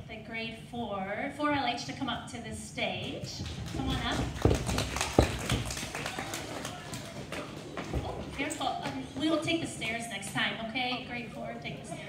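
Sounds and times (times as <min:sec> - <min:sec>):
children's feet on a stage: 0:03.0 - 0:12.0.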